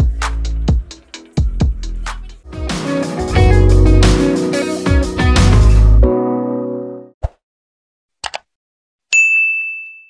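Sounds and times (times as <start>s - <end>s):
double mouse click: 8.2s - 8.5s
notification bell ding: 9.2s - 10.0s.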